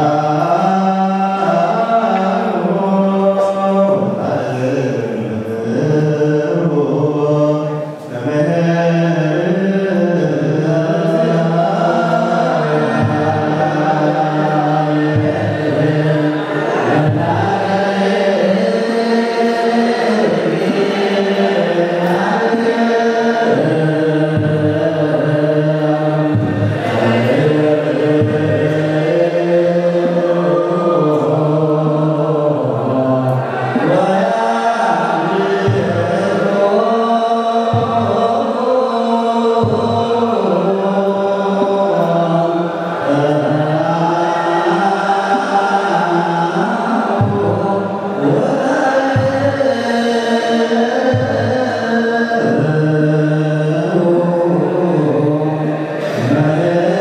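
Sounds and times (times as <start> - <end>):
men chanting together: 0.0 - 57.0.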